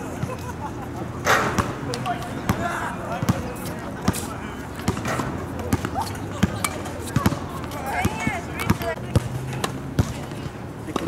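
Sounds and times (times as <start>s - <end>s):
tennis balls struck by rackets: 1.2s - 11.0s.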